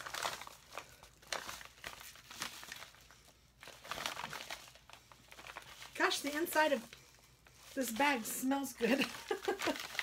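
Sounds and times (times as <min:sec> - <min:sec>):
crinkly package wrapping crackling: 0:00.0 - 0:10.0.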